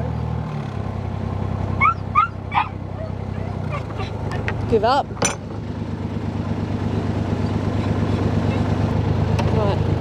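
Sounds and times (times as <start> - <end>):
diesel engine running: 0.0 - 10.0
dog whimpering yelps: 1.8 - 4.4.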